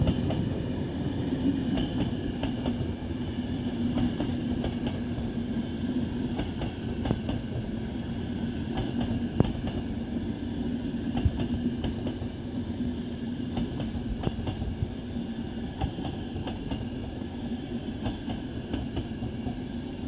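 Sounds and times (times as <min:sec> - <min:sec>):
train coaches rumbling past: 0:00.0 - 0:20.0.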